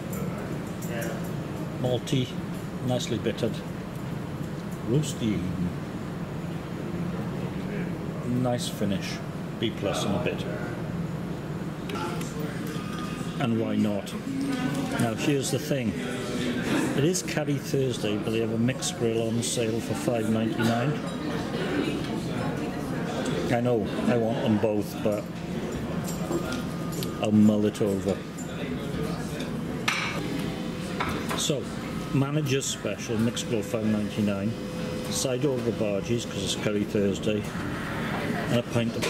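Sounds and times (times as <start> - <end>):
steady low hum: 0.0 - 39.0
faint chatter of voices: 11.7 - 39.0.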